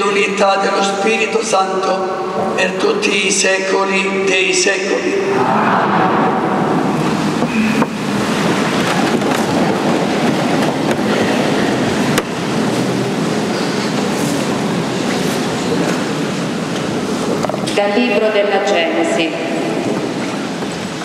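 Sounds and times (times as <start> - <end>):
rustle and shuffle of people: 12.0 - 17.8.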